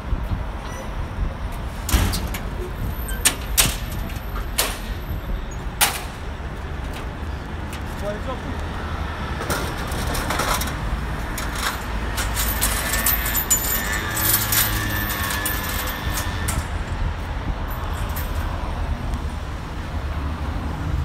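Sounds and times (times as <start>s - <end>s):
road traffic rumble: 0.0s - 21.0s.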